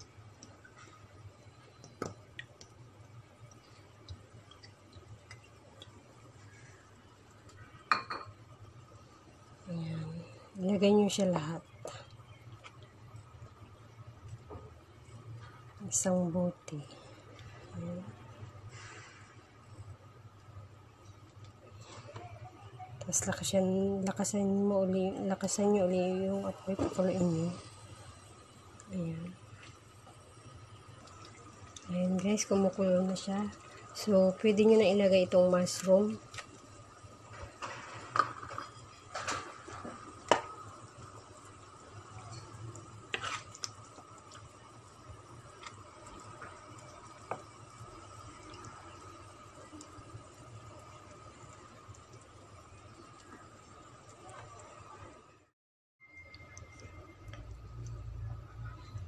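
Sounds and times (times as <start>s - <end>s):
faint steady hum: 0.0s - 59.0s
sauce popping in a pan: 24.0s - 55.0s.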